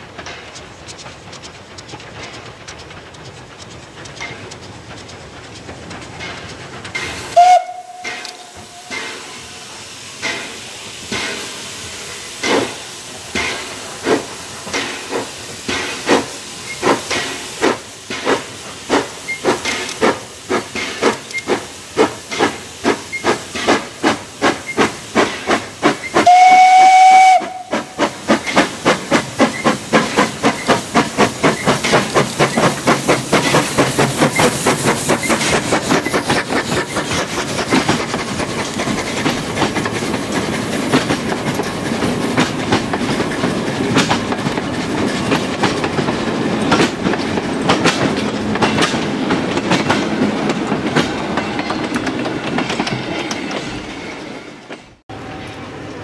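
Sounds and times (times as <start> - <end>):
steam locomotive exhaust chuffs: 0.0 - 53.9
wheel clicks over rail joints: 0.1 - 9.1, 12.4 - 26.3, 27.8 - 53.7
locomotive whistle blast: 7.4 - 9.0, 26.2 - 27.8.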